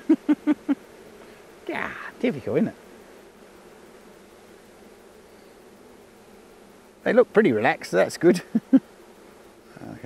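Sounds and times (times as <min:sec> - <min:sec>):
honey bees humming: 0:00.0 - 0:10.0
light hiss: 0:00.0 - 0:10.0.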